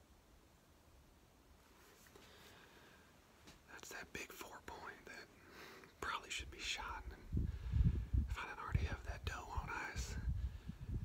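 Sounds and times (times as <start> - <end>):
man whispering: 3.6 - 7.4, 8.2 - 10.4.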